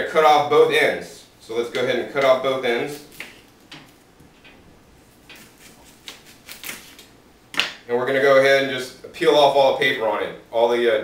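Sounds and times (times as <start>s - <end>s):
knife cutting onion: 5.2s - 7.0s.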